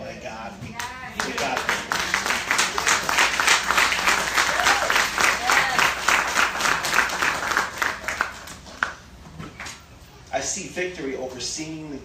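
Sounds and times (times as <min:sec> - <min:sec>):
congregation applauding: 0:01.2 - 0:09.1.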